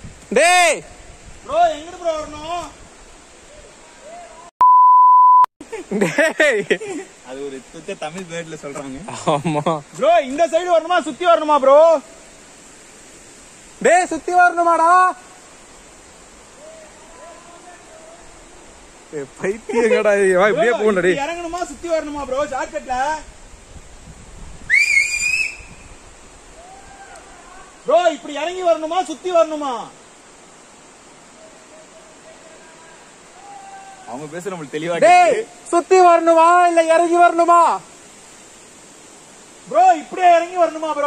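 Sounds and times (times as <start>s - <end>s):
censor bleep: 4.6s - 5.5s
dialogue: 6.4s - 12.9s, 13.5s - 15.8s, 16.4s - 23.4s, 26.5s - 41.0s
loud rising whistle: 24.7s - 25.9s.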